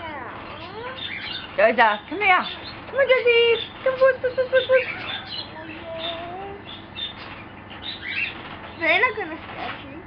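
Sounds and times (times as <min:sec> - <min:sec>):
bird chirps: 0:00.5 - 0:09.2
woman speaking: 0:01.6 - 0:05.0.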